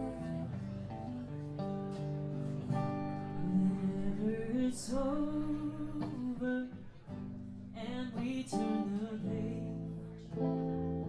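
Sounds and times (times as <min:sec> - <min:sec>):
bass guitar: 0:00.0 - 0:11.0
quiet acoustic guitar: 0:00.0 - 0:11.0.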